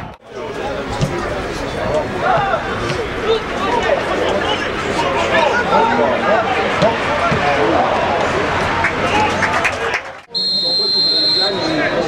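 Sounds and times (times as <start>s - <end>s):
players and crowd shouting: 0.0s - 10.0s
referee's whistle blast: 10.3s - 12.0s.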